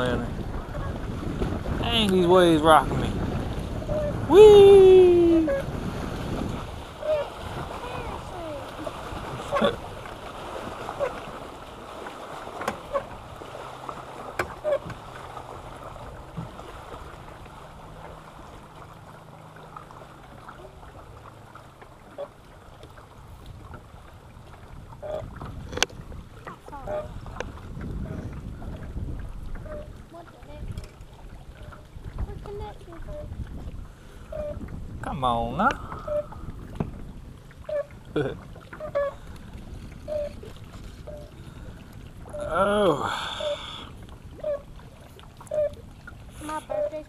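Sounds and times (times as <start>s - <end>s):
wind on microphone: 0.0s - 17.5s, 23.2s - 47.0s
waves lapping against boat hull: 0.0s - 47.0s.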